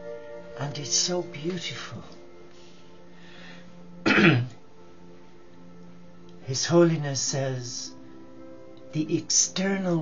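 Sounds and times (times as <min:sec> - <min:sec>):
faint background music: 0:00.0 - 0:10.0
man clearing his throat: 0:04.0 - 0:04.6.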